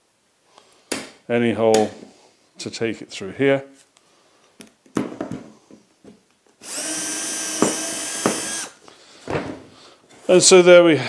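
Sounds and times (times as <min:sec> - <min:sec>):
cordless drill drilling wood: 0:06.6 - 0:08.8.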